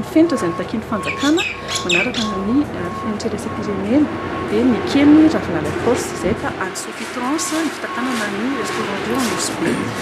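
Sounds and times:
woman talking: 0.0s - 10.0s
high squeaky calls: 0.4s - 3.0s.

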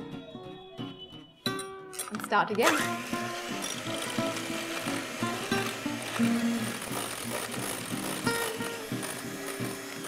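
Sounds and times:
background music with melody: 0.0s - 10.0s
electric hand mixer whipping: 2.6s - 10.0s.

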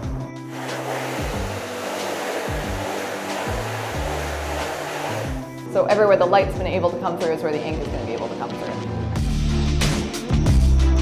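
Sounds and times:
water spraying from hose: 0.5s - 5.5s
background music with bass line: 9.0s - 11.0s.

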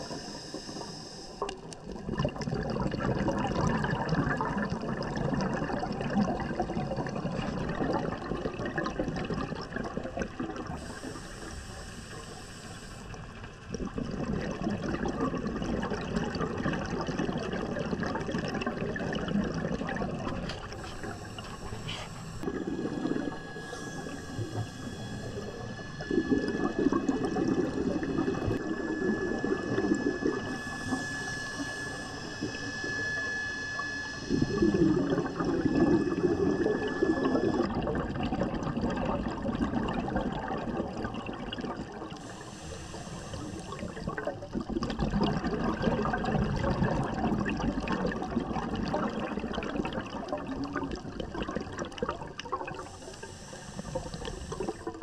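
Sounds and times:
regulator hissing inhalations: 0.0s - 1.7s, 10.8s - 13.3s, 20.4s - 28.6s, 42.1s - 44.1s, 52.7s - 55.0s
exhaled bubbles rushing: 0.0s - 11.2s, 13.3s - 55.0s.

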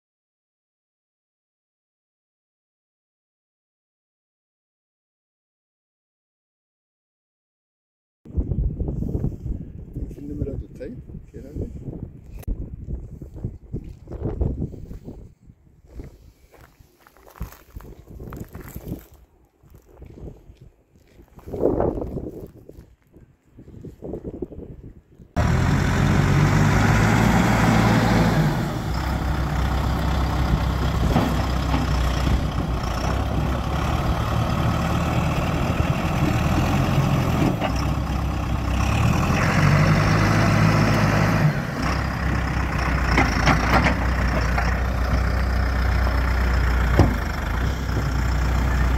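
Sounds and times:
backhoe diesel engine running: 25.4s - 48.9s.

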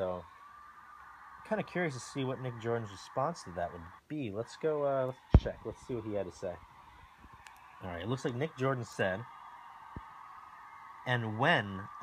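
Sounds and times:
man speaking: 1.4s - 6.6s, 7.8s - 9.3s, 11.1s - 12.0s.

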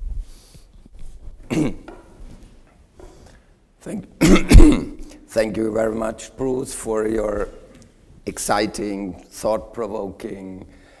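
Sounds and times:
person coughing: 1.5s - 1.9s, 4.2s - 5.2s.

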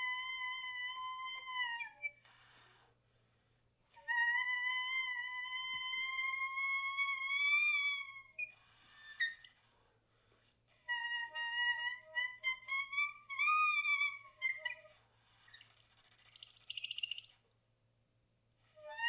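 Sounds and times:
saxophone breath noise: 2.2s - 3.6s.

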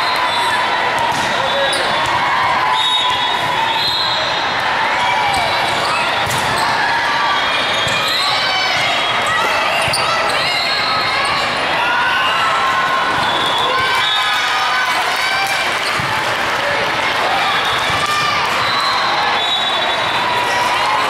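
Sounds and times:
players' voices and shouts: 0.0s - 21.0s
volleyball smacks: 6.2s - 6.6s.

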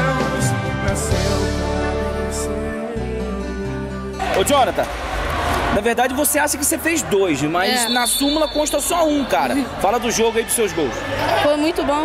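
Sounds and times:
background music: 0.0s - 8.2s
crowd noise echoing: 4.2s - 12.0s.

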